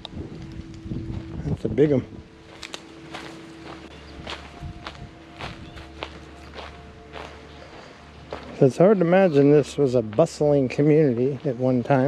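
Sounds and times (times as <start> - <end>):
footsteps walking: 0.3 - 1.7, 2.3 - 12.0.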